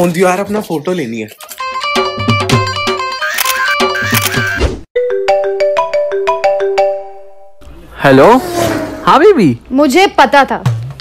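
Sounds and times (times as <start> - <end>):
marimba-like phone ringtone: 1.8 - 7.2.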